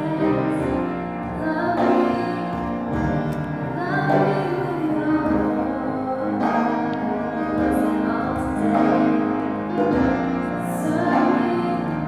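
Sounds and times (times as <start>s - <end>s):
piano accompaniment: 0.0s - 12.0s
woman singing worship song: 0.0s - 12.0s.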